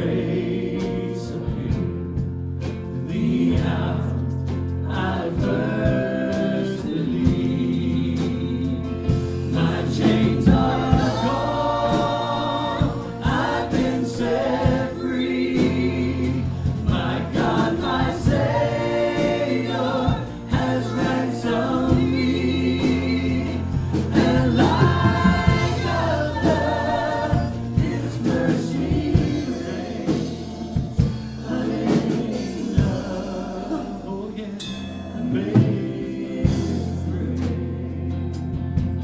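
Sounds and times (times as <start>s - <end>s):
keyboard: 0.0s - 39.0s
singers singing together: 0.0s - 39.0s
steady bass line: 0.0s - 39.0s.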